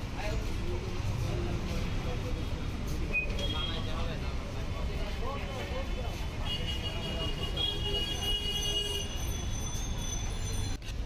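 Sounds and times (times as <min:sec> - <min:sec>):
traffic rumble: 0:00.0 - 0:11.0
people talking: 0:00.1 - 0:09.0.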